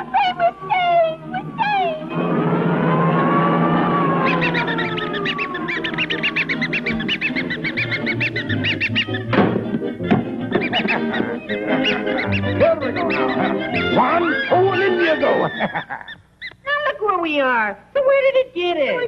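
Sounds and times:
cartoon soundtrack music: 0.0 - 15.7
high squeaky honks: 4.2 - 9.4, 10.6 - 15.4.

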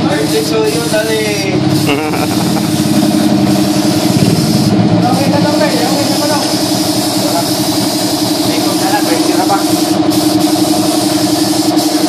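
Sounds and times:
air compressor running: 0.0 - 12.0.

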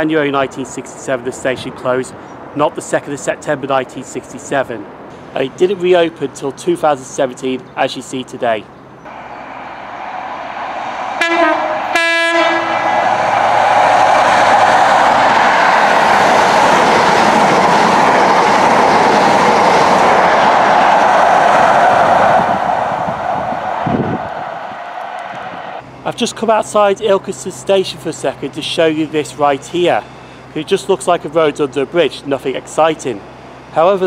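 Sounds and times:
train horn: 9.1 - 13.4
train passing at speed: 9.1 - 26.0.

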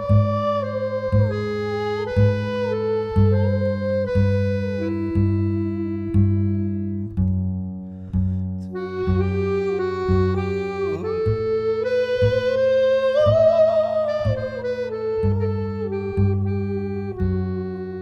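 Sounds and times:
sliding melody line: 0.0 - 7.2, 8.6 - 18.0
plucked double bass: 0.0 - 18.0.

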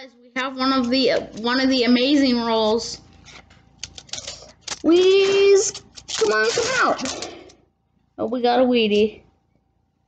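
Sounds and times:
paper rustling: 3.2 - 7.5
paper coin roll tearing: 3.8 - 7.3.

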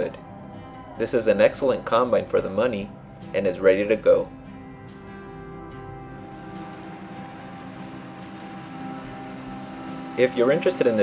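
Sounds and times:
diesel engine drone: 0.0 - 11.0.

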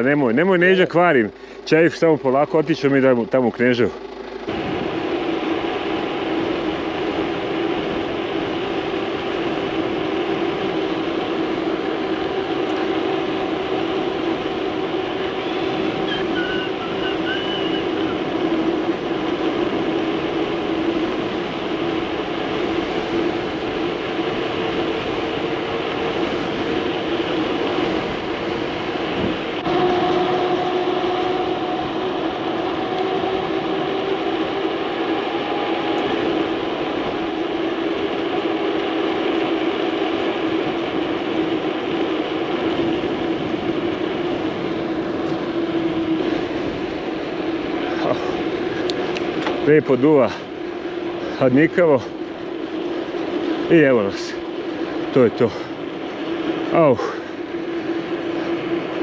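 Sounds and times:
bike tyres humming on road: 0.0 - 59.0
wind on microphone: 4.5 - 49.6.

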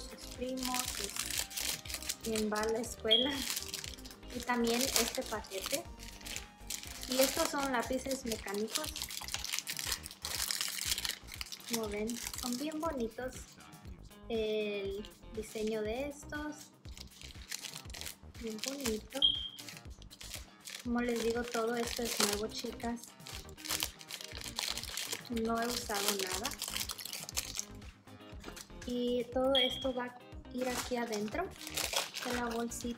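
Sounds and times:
plastic wrapper crinkling: 0.0 - 12.8, 16.9 - 27.8, 30.6 - 32.9
soft background music: 0.0 - 32.9.

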